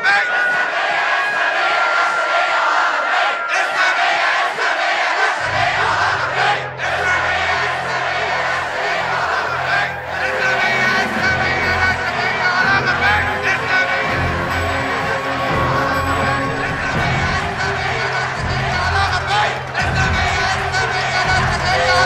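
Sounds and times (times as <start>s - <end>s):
crowd shouting: 0.0s - 22.0s
low music: 5.4s - 22.0s.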